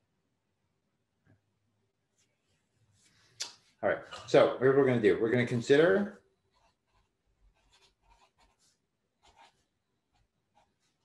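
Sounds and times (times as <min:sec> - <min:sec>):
marker pen scratching on paper: 0:06.5 - 0:11.0.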